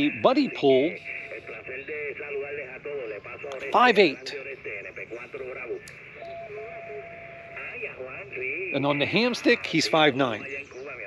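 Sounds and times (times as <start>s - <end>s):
radio voice through speaker: 0.0s - 11.0s
steady radio whistle: 0.0s - 11.0s.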